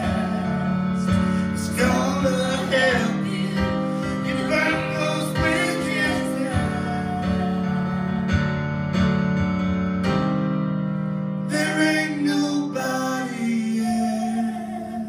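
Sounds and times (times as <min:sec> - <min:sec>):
person singing: 0:00.0 - 0:08.4, 0:11.5 - 0:15.0
piano chords: 0:00.0 - 0:15.0.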